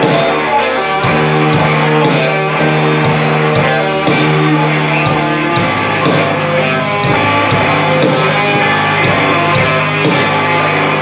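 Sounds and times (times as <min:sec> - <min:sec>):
drum hits: 0:00.0 - 0:11.0
electric guitars: 0:00.0 - 0:11.0
rock band playing live: 0:00.0 - 0:11.0.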